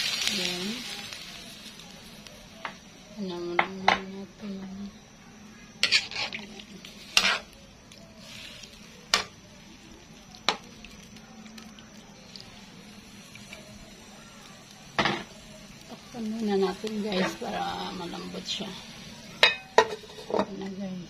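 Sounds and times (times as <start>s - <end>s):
meat sizzling: 0.0s - 21.0s.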